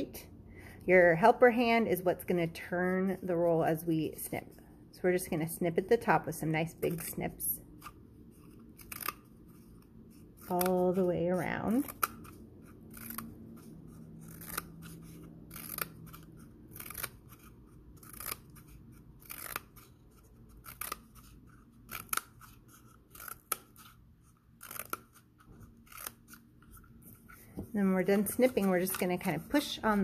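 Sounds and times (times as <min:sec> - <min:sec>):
scissors snipping cardboard: 0:07.8 - 0:30.0.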